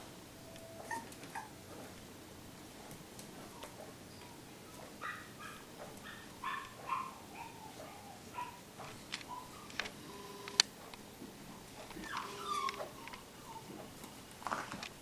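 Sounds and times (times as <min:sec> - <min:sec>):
puppies yipping and whining: 0:00.8 - 0:01.6, 0:05.0 - 0:08.6, 0:09.3 - 0:09.7, 0:12.0 - 0:13.8.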